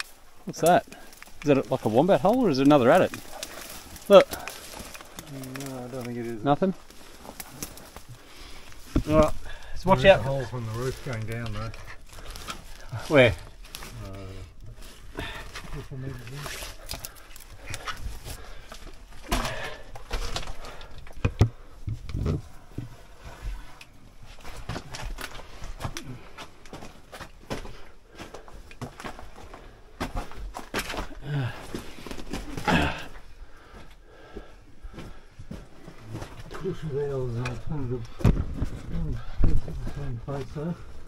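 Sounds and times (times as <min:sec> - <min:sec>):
rock and gravel crunching: 0:00.0 - 0:41.0.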